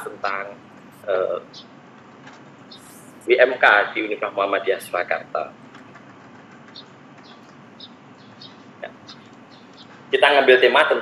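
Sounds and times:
steady background hiss: 0.0s - 11.0s
small bird chirping: 0.2s - 3.5s, 4.6s - 10.7s.

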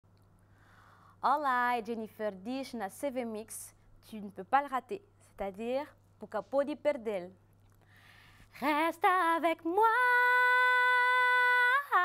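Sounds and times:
woman singing a cappella: 8.5s - 12.0s.

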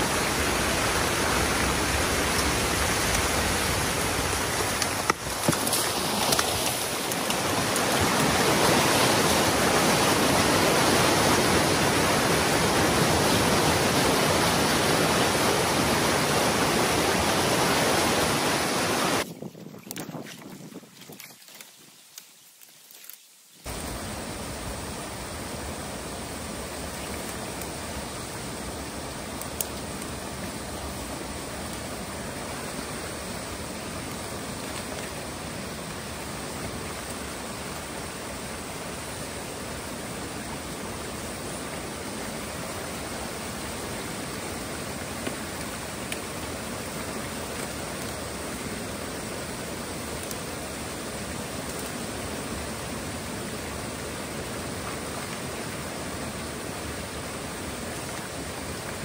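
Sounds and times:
water rushing through a dam breach: 0.0s - 19.3s, 23.6s - 59.0s.

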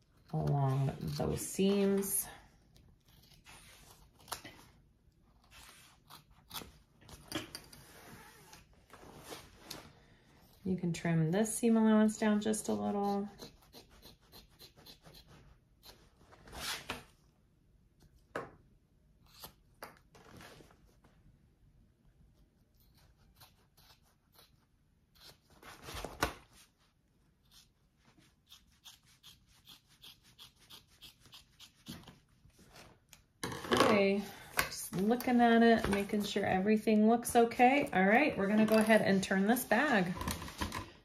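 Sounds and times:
scissors snipping fabric: 5.4s - 7.5s, 12.7s - 16.1s, 22.7s - 25.6s, 28.4s - 32.2s.

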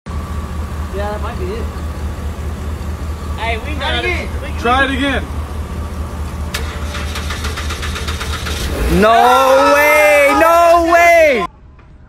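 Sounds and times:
car starter cranking engine: 6.0s - 9.8s.

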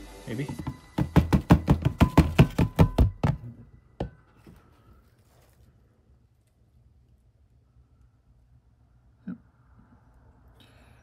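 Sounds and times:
hand knocking on plastic tub: 0.4s - 3.4s.

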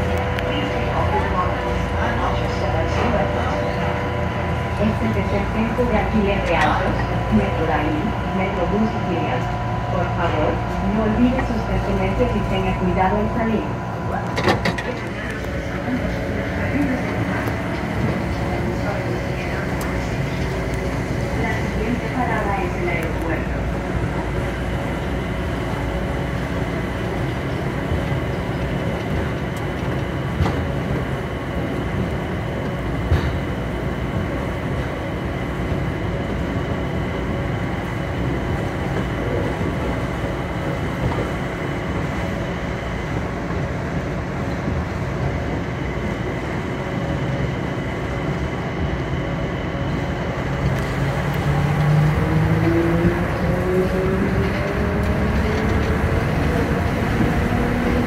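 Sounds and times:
train running rumble: 0.0s - 58.0s.

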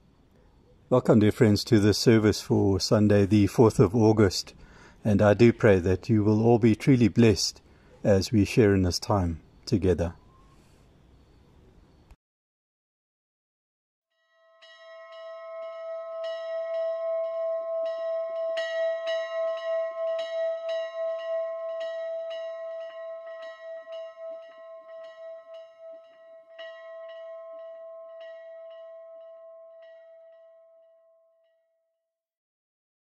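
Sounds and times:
church bell ringing: 14.4s - 31.5s.

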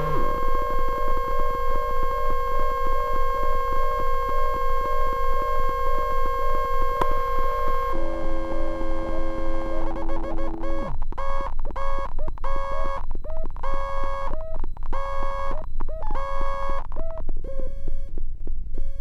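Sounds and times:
synthesizer pulsing tones: 0.0s - 1.9s, 7.2s - 11.0s
lower synthesizer tones: 0.0s - 11.2s.

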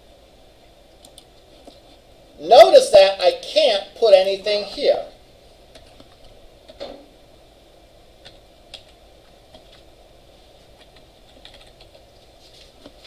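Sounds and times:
keyboard keys clicking: 10.8s - 12.0s.

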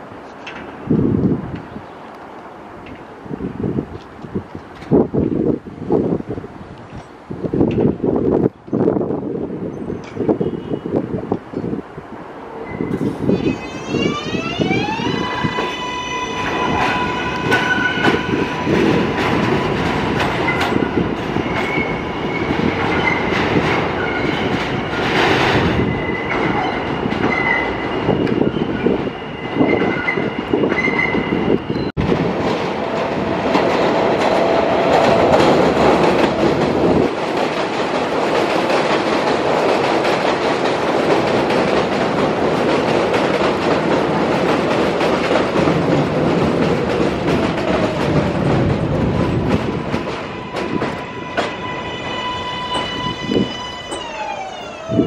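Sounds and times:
train passing close by: 0.0s - 55.0s
train wheels rumbling on rail: 0.0s - 55.0s.

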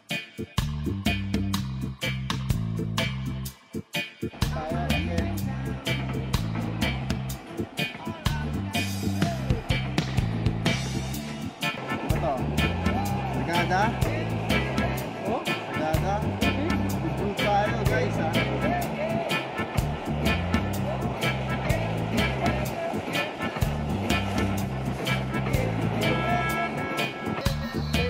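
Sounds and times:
song with singing over beat: 3.5s - 28.0s.

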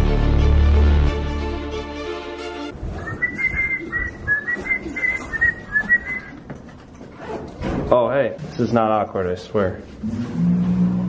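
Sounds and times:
music: 0.0s - 3.5s
footsteps: 2.7s - 10.9s
handling noise: 2.8s - 8.1s
person whistling short notes: 3.0s - 6.3s.

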